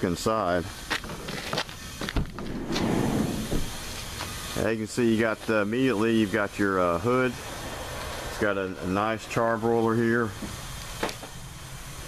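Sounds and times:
heavy thump: 2.1 - 4.3
van door rushing open: 2.1 - 4.3.

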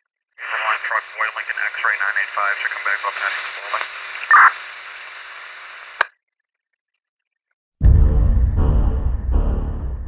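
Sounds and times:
radio static hiss: 0.4 - 6.1
sharp radio click: 3.0 - 4.6, 5.8 - 6.1.

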